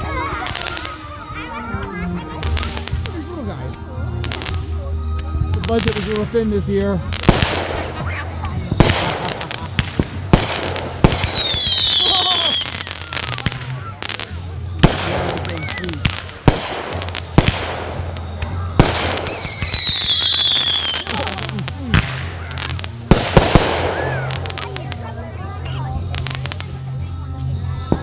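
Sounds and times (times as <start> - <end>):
fireworks bangs: 1.8 - 3.3, 7.0 - 25.1.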